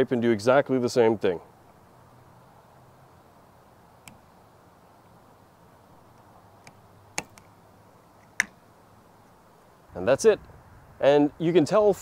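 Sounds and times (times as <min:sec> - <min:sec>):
sharp plastic clicks: 0:04.0 - 0:04.2, 0:06.2 - 0:07.5, 0:08.2 - 0:08.6.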